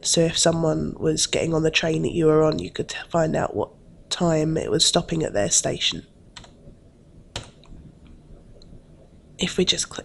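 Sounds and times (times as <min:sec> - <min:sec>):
low room hum: 0:00.0 - 0:10.0
computer mouse clicks: 0:06.4 - 0:06.6, 0:07.3 - 0:08.7.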